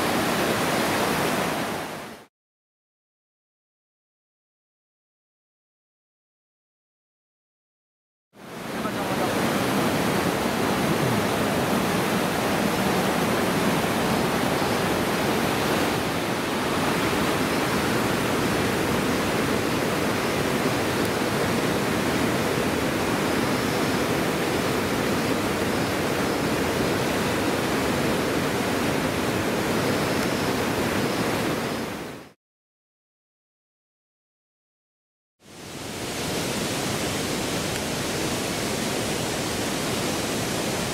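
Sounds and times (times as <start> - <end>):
river rapids rushing over rock: 8.4 - 32.2, 35.5 - 40.9.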